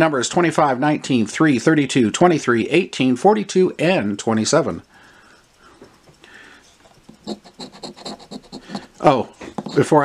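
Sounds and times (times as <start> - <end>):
coin scratching lottery ticket: 7.1 - 10.0.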